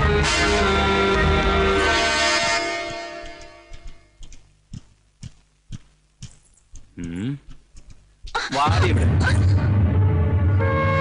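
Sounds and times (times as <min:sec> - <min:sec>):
film background music: 0:00.0 - 0:04.1, 0:08.5 - 0:11.0
footsteps on hard floor: 0:02.4 - 0:08.4.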